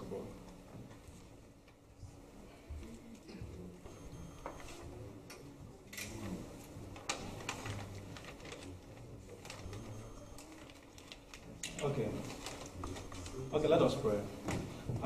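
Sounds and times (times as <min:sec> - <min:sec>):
faint low murmur: 0:00.0 - 0:15.0.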